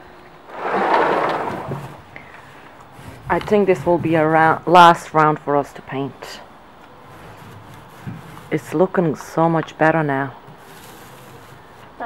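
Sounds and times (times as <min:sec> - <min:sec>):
gust of wind: 0:00.4 - 0:02.1.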